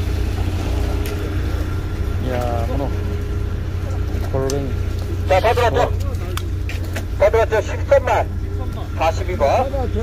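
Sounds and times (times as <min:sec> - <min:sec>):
engine idling: 0:00.0 - 0:10.0.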